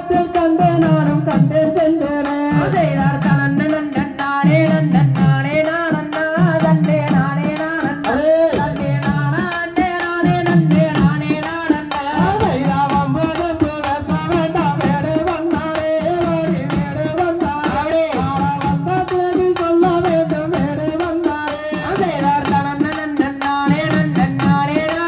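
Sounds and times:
drum beating fast rhythm: 0:00.0 - 0:25.0
man singing into a microphone: 0:00.0 - 0:25.0.

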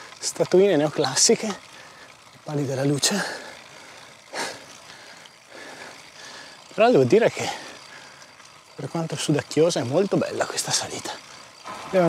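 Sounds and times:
person breathing out hard: 0:03.3 - 0:06.6.

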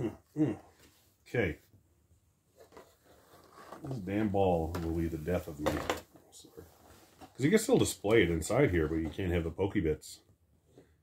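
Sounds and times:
man speaking: 0:00.0 - 0:01.7, 0:03.8 - 0:06.8, 0:07.4 - 0:10.3.

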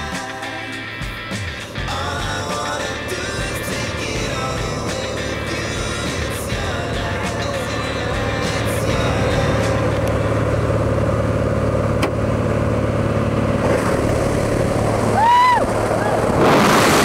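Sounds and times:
plane engine drone: 0:00.0 - 0:17.0
person yelling: 0:15.2 - 0:16.3.

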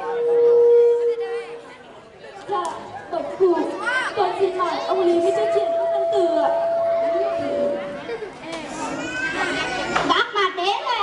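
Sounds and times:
voices through stage microphones: 0:00.0 - 0:11.0
steady held tone: 0:04.1 - 0:08.9.

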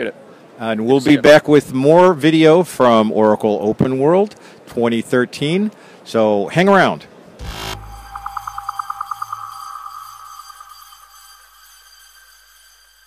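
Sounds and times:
sharp electronic hit: 0:07.4 - 0:13.0
synthesized tone with pulsing flutter: 0:07.4 - 0:13.0.

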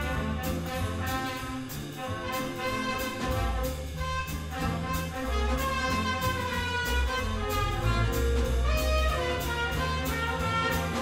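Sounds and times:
jazz big band playing: 0:00.0 - 0:11.0.

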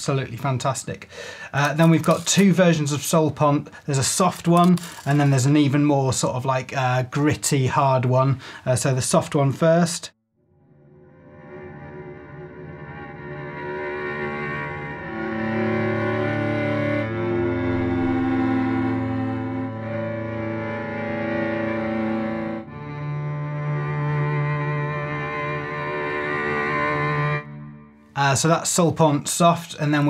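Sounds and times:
bowed cello chords: 0:11.2 - 0:28.2.

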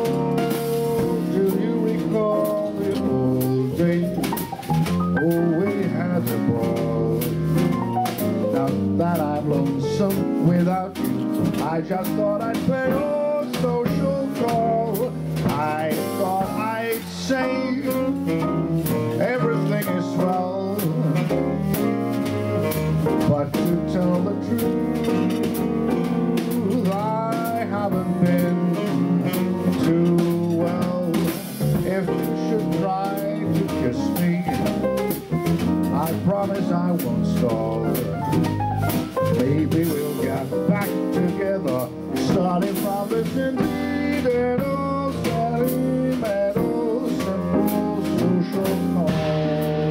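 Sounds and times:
bass: 0:00.0 - 0:49.9
drums with cymbal beat: 0:00.0 - 0:49.9
piano: 0:00.0 - 0:49.9
tenor saxophone melody: 0:17.4 - 0:30.9.

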